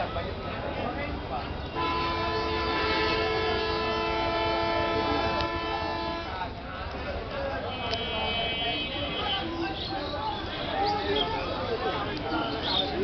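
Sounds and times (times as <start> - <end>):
background noise: 0.0 - 13.0
horn sounding steady chord: 1.8 - 6.4.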